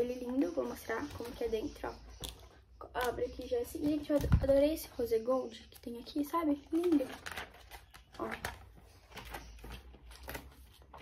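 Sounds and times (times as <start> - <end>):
notebook pages rustling: 0.0 - 2.4, 5.5 - 11.0.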